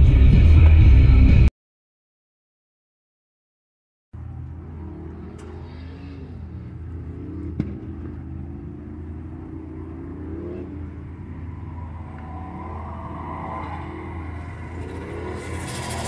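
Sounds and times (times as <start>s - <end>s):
car engine: 4.2s - 16.0s
car engines revving: 4.2s - 16.0s
steady low rumble: 4.2s - 16.0s.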